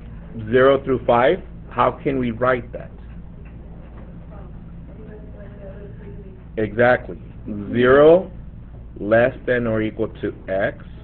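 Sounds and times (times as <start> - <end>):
steady low hum: 0.0 - 11.0
faint distant voices: 3.3 - 8.3.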